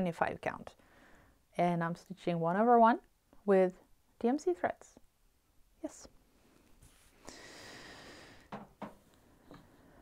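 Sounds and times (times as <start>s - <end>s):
person breathing out: 7.2s - 8.5s.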